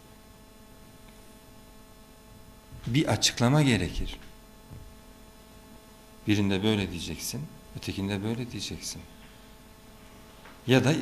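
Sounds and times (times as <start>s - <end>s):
faint electrical hum with hiss: 0.0s - 11.0s.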